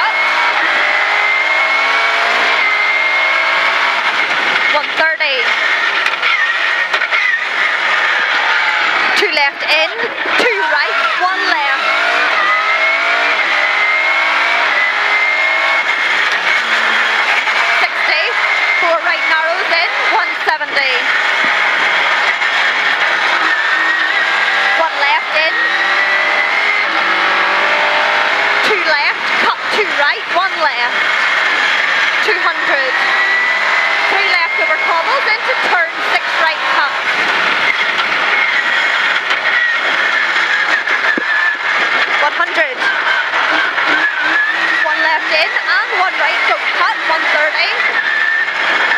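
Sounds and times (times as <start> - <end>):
constant high whine: 0.0 - 48.9
rally car engine running hard: 0.0 - 48.9
road and tyre noise: 0.0 - 48.9.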